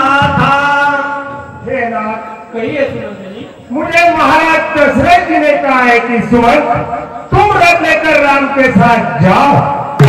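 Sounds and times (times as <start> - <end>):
man's sing-song voice over microphone: 0.0 - 1.7.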